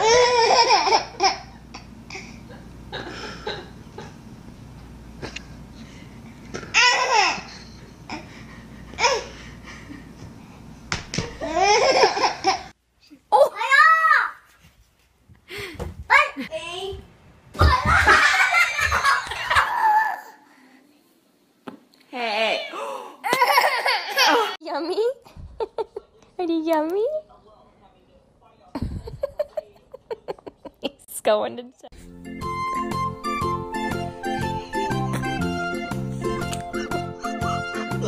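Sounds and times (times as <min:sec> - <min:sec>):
baby laughing: 0:00.0 - 0:02.4, 0:06.6 - 0:08.2, 0:11.4 - 0:12.7.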